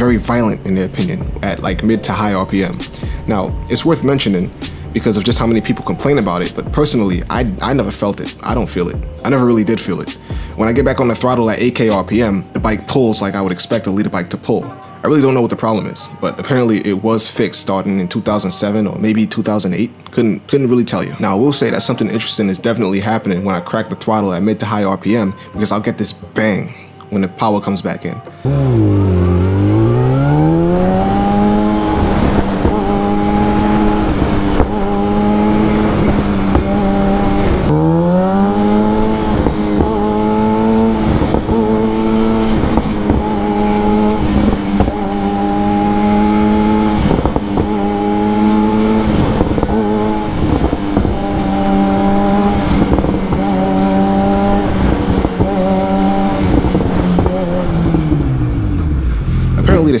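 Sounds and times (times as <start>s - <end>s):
motorcycle engine revving: 0.0s - 12.8s, 28.4s - 60.0s.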